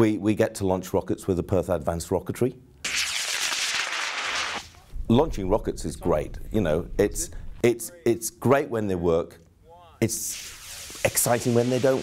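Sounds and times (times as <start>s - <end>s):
rocket motor hissing whoosh: 10.3s - 12.0s.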